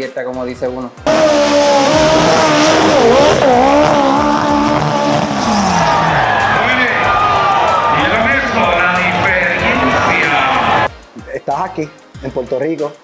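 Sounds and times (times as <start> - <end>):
race car engine revving: 1.1 - 10.9.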